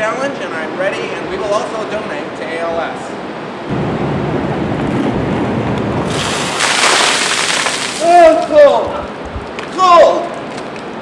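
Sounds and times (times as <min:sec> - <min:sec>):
low steady rushing noise: 0:00.0 - 0:10.0
water splashing onto pavement: 0:06.0 - 0:10.9.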